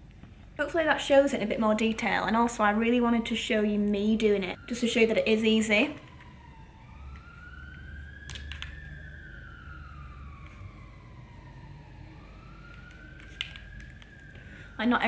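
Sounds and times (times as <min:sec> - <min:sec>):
faint siren wailing: 0:00.8 - 0:15.0.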